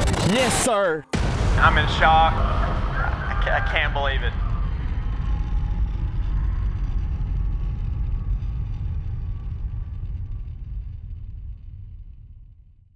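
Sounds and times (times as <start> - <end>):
low steady rumble: 1.2 - 12.9.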